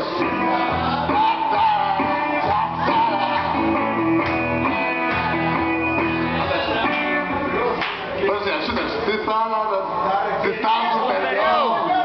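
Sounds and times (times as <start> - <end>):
electric guitar chords strummed: 0.0 - 7.8.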